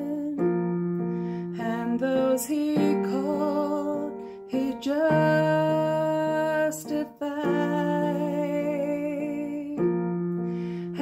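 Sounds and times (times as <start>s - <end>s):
electric keyboard chords: 0.0s - 11.0s.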